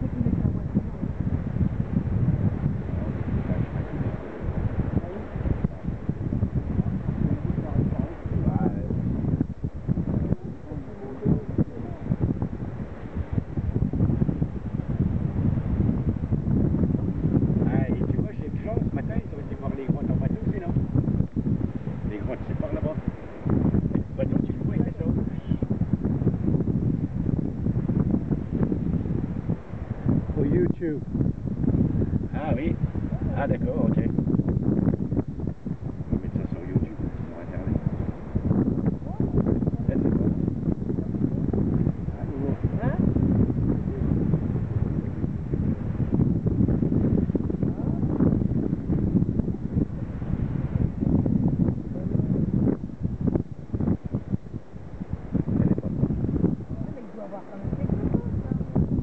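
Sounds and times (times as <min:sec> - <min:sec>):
wind blowing across microphone: 0:00.0 - 0:59.0.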